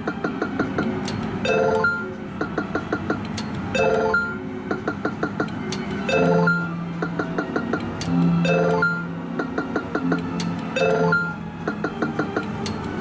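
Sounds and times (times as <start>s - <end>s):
bleeping game machine music: 0.2s - 3.1s, 3.7s - 12.4s.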